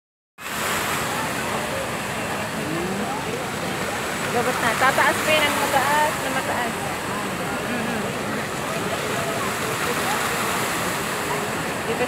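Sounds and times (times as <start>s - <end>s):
fountain water splashing: 0.4s - 12.0s
faint voices: 0.5s - 12.0s.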